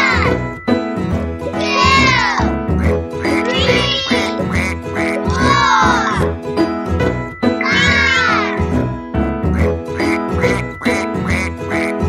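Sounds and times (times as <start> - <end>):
upbeat children's song music: 0.0 - 12.0
cartoon duck quacks: 1.8 - 6.0, 9.5 - 12.0.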